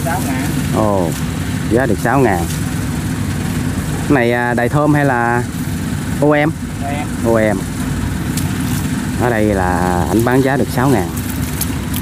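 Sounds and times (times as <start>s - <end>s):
combine harvester engine droning: 0.0s - 12.0s.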